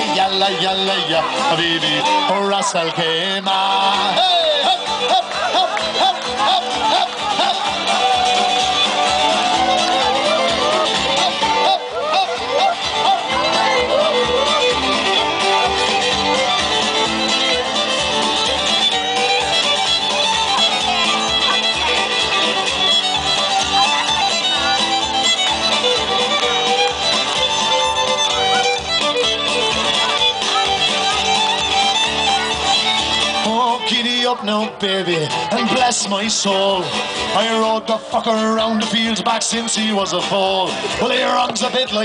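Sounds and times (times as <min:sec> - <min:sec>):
fiddle: 0:00.0 - 0:42.0
live band playing: 0:00.0 - 0:42.0.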